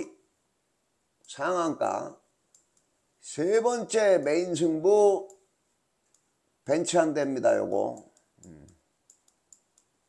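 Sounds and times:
man murmuring softly: 0:08.4 - 0:08.8.

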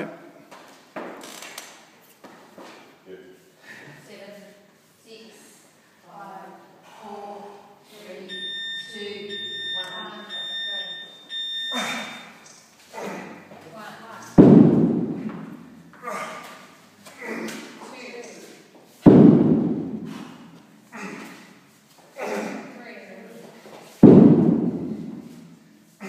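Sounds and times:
electronic timer beep: 0:08.3 - 0:12.6.

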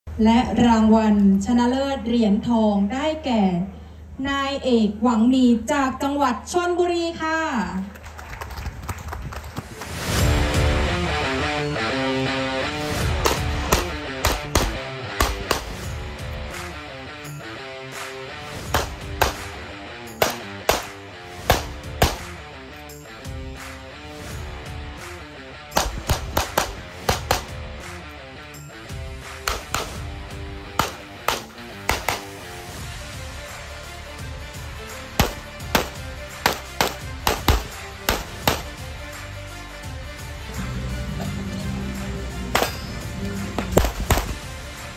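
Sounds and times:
guitar music: 0:10.4 - 0:32.7
pistol shots: 0:13.2 - 0:15.9, 0:18.6 - 0:22.4, 0:25.7 - 0:27.6, 0:29.4 - 0:30.1, 0:30.7 - 0:32.4, 0:35.2 - 0:38.8, 0:43.6 - 0:44.5.

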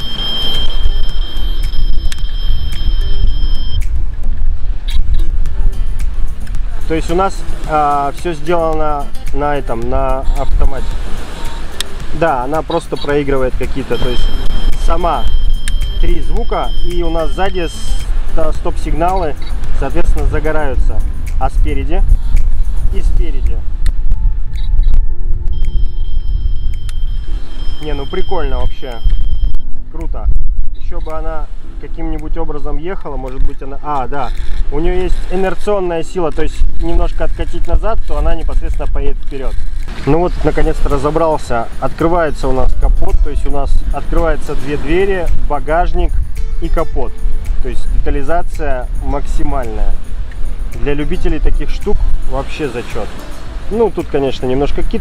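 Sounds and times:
steady high-pitched tone: 0:00.0 - 0:04.2, 0:11.3 - 0:23.5, 0:24.1 - 0:29.8
background music: 0:00.0 - 0:30.0, 0:30.7 - 0:55.0
wind rumble on microphone: 0:00.0 - 0:55.0
sharp clicks: 0:04.8 - 0:07.2
strong low rumble: 0:14.0 - 0:31.0.

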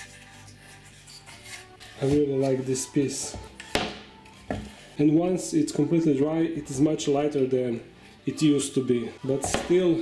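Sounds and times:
hand rubbing wooden log: 0:00.0 - 0:05.0
faint background music: 0:00.0 - 0:10.0.

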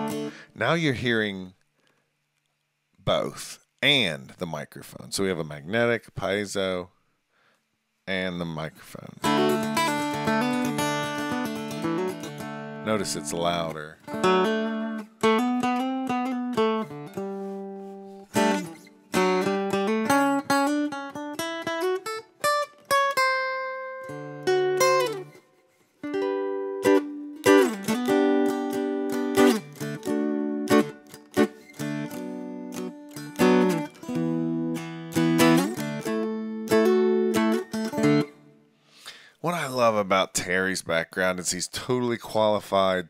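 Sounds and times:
mountain dulcimer strummed and picked: 0:09.2 - 0:25.4, 0:26.1 - 0:38.5.

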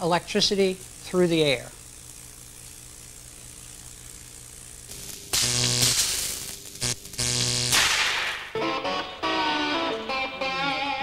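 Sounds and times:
harsh electrical buzz: 0:00.0 - 0:11.0
low electrical hum: 0:00.0 - 0:11.0
electric guitar music: 0:08.4 - 0:11.0.

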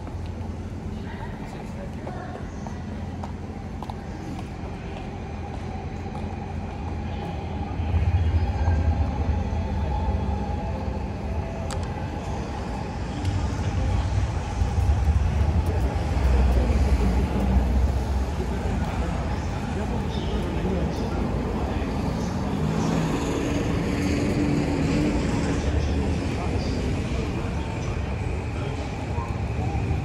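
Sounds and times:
low rumble of passing vehicles: 0:00.0 - 0:30.0.

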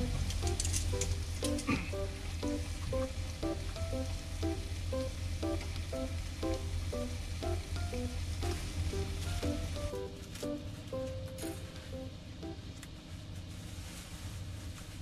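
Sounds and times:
plucked melodic background music: 0:00.0 - 0:12.6.

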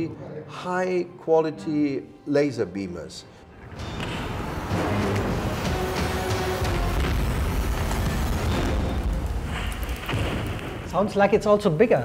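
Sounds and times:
dramatic music with deep booms: 0:03.3 - 0:11.0.

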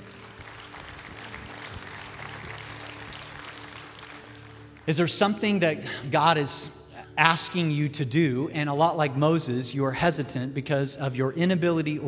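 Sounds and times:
soft keyboard chords: 0:00.0 - 0:12.0.

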